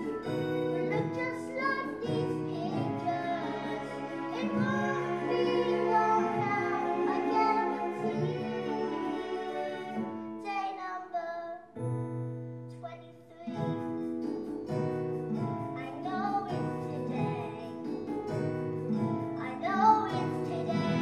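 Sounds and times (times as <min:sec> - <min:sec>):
instrumental accompaniment: 0:00.0 - 0:11.0, 0:11.7 - 0:21.0
girl singing a ballad: 0:00.0 - 0:11.8, 0:12.6 - 0:21.0.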